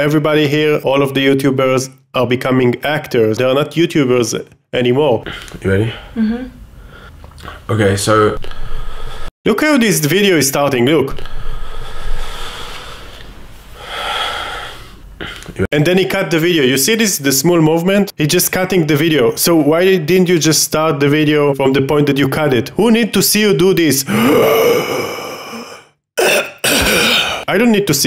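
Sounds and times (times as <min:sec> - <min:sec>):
person exhaling: 0:11.2 - 0:13.2, 0:24.1 - 0:26.0, 0:26.8 - 0:27.5
man gasping: 0:24.1 - 0:26.0, 0:26.7 - 0:27.5
throat-clearing cough: 0:26.2 - 0:27.5.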